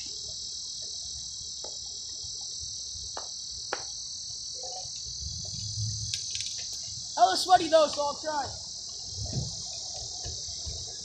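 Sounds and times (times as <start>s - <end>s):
high-pitched insect drone: 0.0s - 11.0s.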